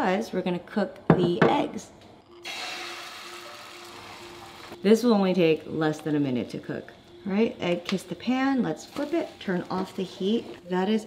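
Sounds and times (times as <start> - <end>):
egg sizzling in a frying pan: 2.4 - 4.8.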